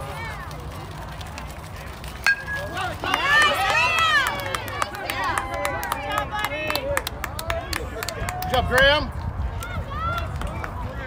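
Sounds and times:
bat cracking against ball: 0:02.3 - 0:02.9
spectators shouting and cheering: 0:02.3 - 0:11.0.

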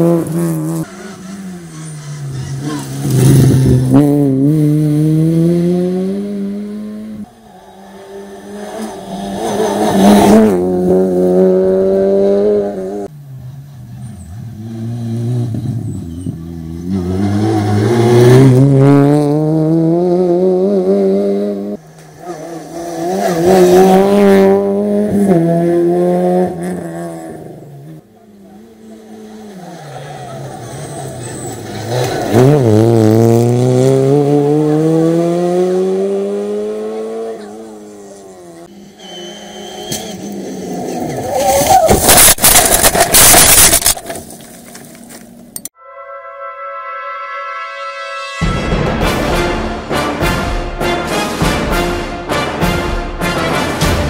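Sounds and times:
rally cars passing at speed: 0:00.0 - 0:41.9.

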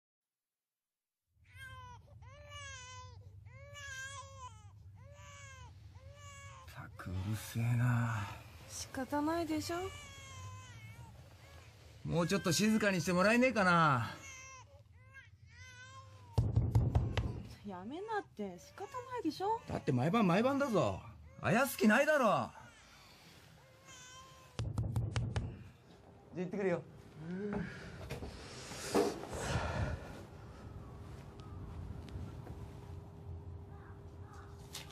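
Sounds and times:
infant crying: 0:01.5 - 0:06.7, 0:09.7 - 0:13.2, 0:13.9 - 0:16.4.

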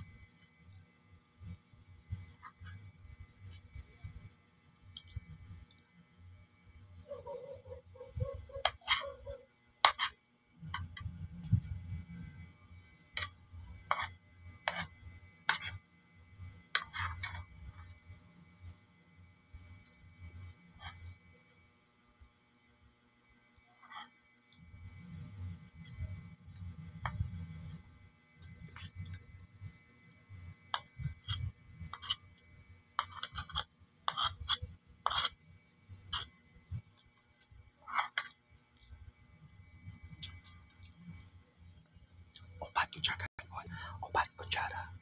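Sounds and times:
metal spoon scraping plastic plate: 0:02.3 - 0:02.8, 0:08.6 - 0:09.2, 0:09.8 - 0:10.2, 0:13.1 - 0:15.8, 0:16.7 - 0:17.9, 0:23.8 - 0:24.2, 0:30.7 - 0:32.4, 0:33.0 - 0:35.4, 0:36.0 - 0:36.4, 0:37.8 - 0:38.4.

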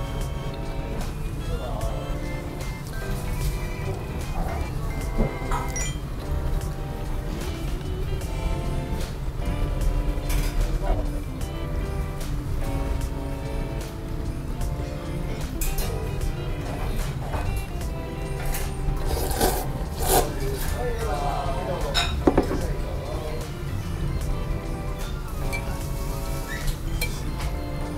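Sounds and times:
background music: 0:00.0 - 0:27.9
noodles slurped: 0:19.0 - 0:20.8.

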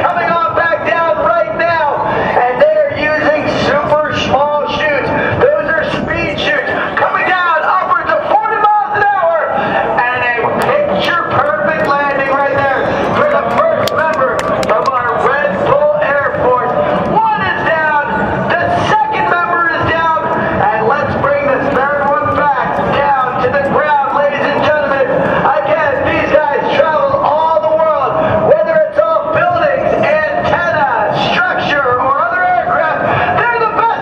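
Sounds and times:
man talking over loudspeakers: 0:00.0 - 0:34.0.

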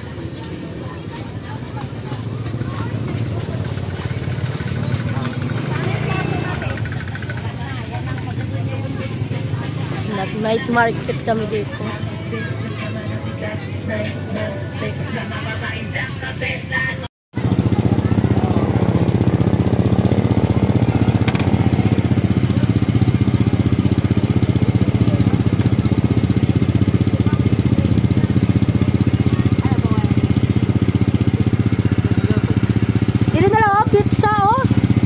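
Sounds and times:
motorcycle engine running: 0:00.0 - 0:16.6, 0:17.4 - 0:35.0
street voices: 0:00.0 - 0:35.0.

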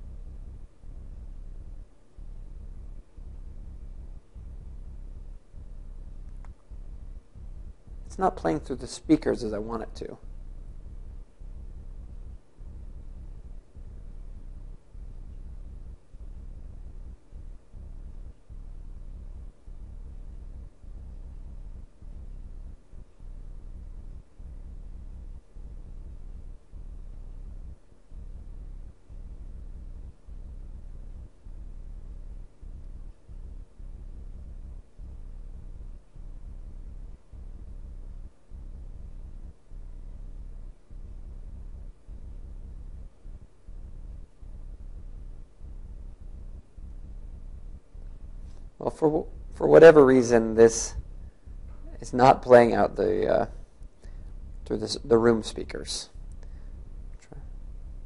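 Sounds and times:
low room hum: 0:00.0 - 0:58.0.

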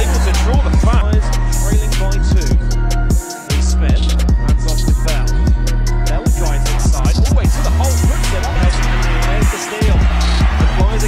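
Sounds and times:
music with deep bass notes: 0:00.0 - 0:11.0.

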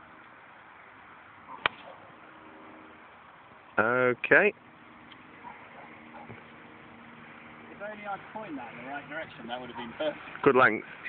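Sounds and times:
background hiss: 0:00.0 - 0:11.0
man speaking: 0:07.7 - 0:11.0.

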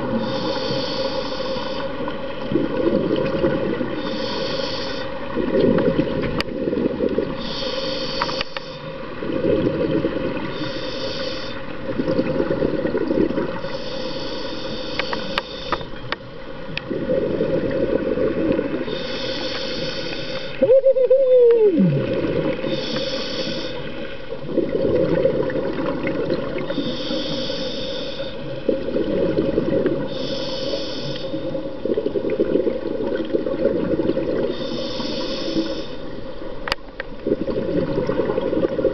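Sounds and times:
scuba regulator inhalation hiss: 0:00.1 - 0:02.1, 0:03.9 - 0:05.2, 0:07.4 - 0:08.9, 0:10.4 - 0:11.7, 0:13.6 - 0:15.9, 0:18.8 - 0:20.6, 0:22.6 - 0:24.1, 0:26.6 - 0:28.6, 0:30.0 - 0:31.7, 0:34.5 - 0:36.1
bubbling of exhaled air: 0:02.4 - 0:15.0, 0:16.8 - 0:23.8, 0:24.4 - 0:36.3, 0:37.1 - 0:38.9.

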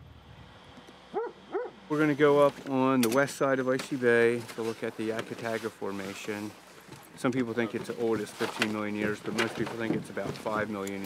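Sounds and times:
dog barking: 0:01.1 - 0:01.8.

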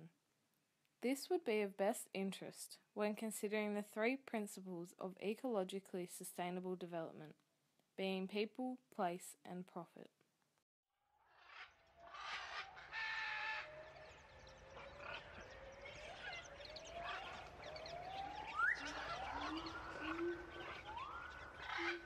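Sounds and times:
rising whistled animal calls: 0:11.3 - 0:22.0.

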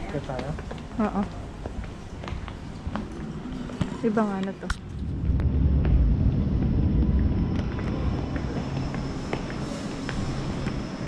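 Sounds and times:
deep low rumble: 0:03.2 - 0:11.0.

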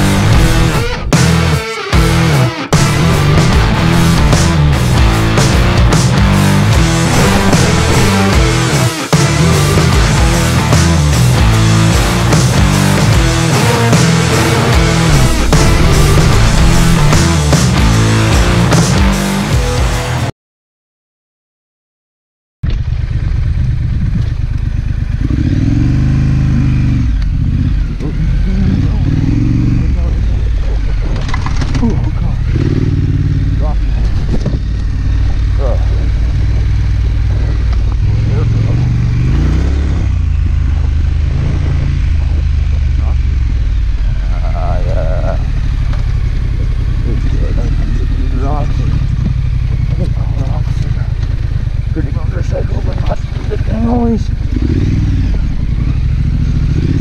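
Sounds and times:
motorcycle engine revving: 0:00.0 - 0:20.2, 0:22.7 - 0:57.0.

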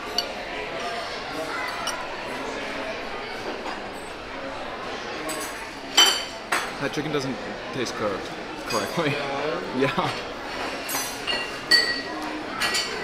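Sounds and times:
cutlery and dishes clinking: 0:00.0 - 0:02.4, 0:05.2 - 0:06.7, 0:08.6 - 0:09.1, 0:10.5 - 0:13.0
murmur of diners' voices: 0:00.0 - 0:13.0.

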